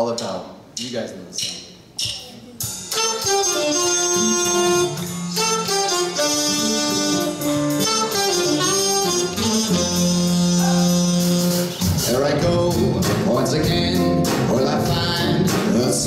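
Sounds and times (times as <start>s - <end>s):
big band playing: 0.0s - 16.0s.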